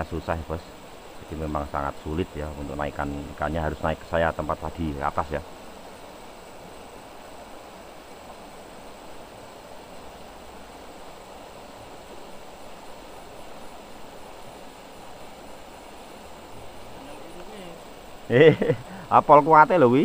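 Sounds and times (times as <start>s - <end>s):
river rushing over rocks: 0.0s - 20.0s.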